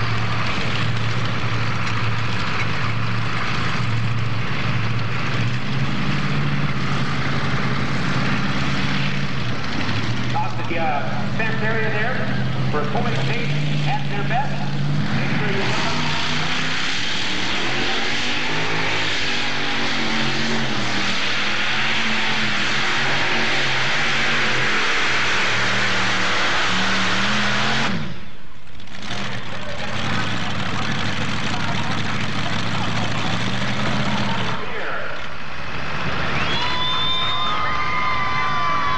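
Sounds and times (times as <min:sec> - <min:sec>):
tractor engines labouring: 0:00.0 - 0:38.9.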